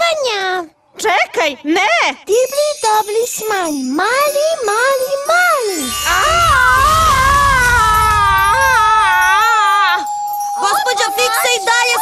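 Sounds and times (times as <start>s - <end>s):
cartoon woman screaming: 6.1s - 10.0s.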